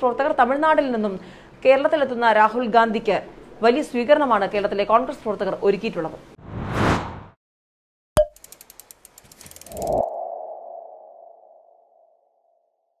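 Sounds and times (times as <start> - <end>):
quick ticks: 8.3 - 10.0.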